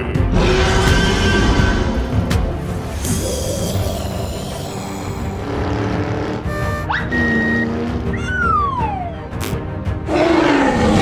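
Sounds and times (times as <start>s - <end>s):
cartoon soundtrack music: 0.0s - 11.0s.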